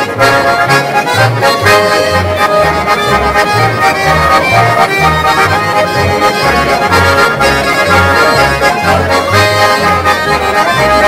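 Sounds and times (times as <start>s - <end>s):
button accordions playing a tune: 0.0s - 11.0s
plucked double bass: 0.0s - 11.0s.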